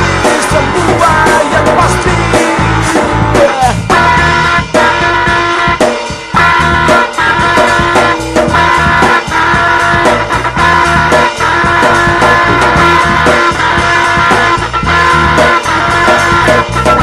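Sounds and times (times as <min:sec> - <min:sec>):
drums: 0:00.0 - 0:17.0
electric guitar riff: 0:00.0 - 0:17.0.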